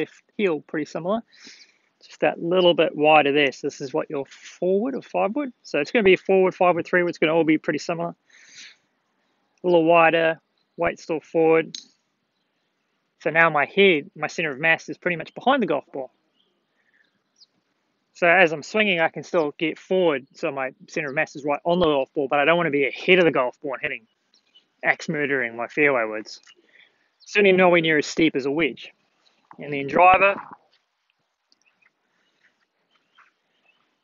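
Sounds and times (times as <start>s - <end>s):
faint bird chirps: 8.5s - 13.2s, 14.4s - 18.4s, 25.4s - 27.5s, 28.9s - 34.0s
man's voice: 18.2s - 24.0s, 24.8s - 26.4s, 27.3s - 28.9s, 29.6s - 30.6s.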